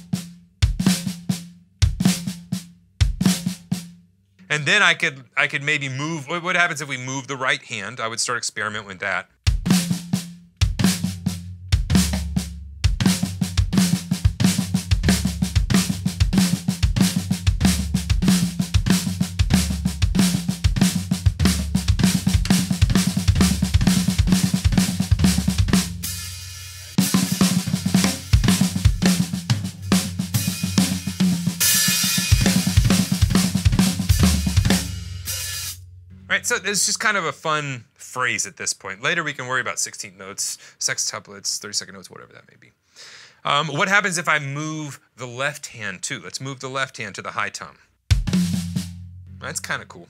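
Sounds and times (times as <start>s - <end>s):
drum kit playing: 0.0s - 5.2s, 9.4s - 37.1s, 48.1s - 50.0s.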